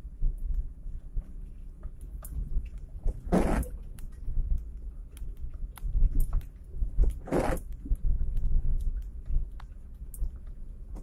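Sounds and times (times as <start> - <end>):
low road rumble: 0.0 - 11.0.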